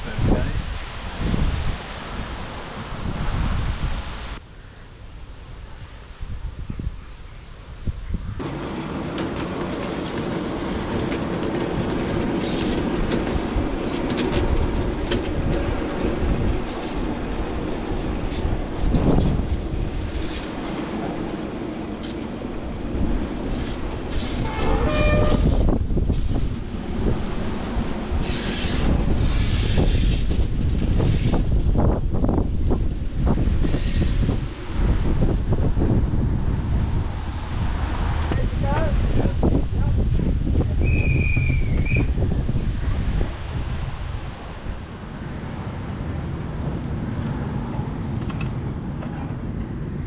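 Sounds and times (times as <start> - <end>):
miniature train running on track: 8.4 - 20.4
wheels clicking over rail joints: 8.4 - 32.9, 46.2 - 50.0
short horn toot: 24.4 - 25.6.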